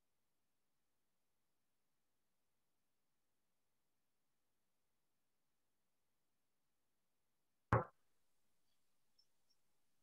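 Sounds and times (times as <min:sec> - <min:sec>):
sharp knock on table: 0:07.7 - 0:08.0.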